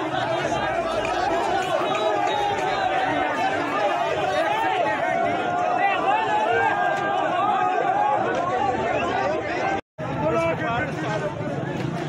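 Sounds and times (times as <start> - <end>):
crowd of men shouting: 0.0 - 9.8.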